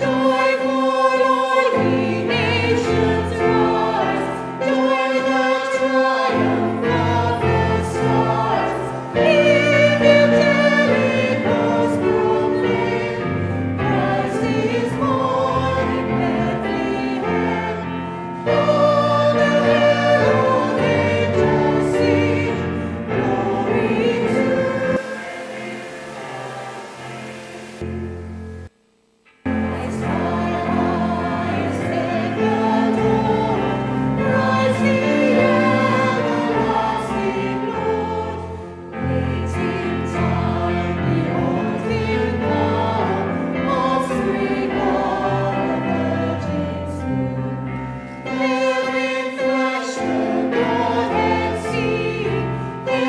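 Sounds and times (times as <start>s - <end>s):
choir singing a carol: 0.0s - 28.6s, 29.5s - 53.0s.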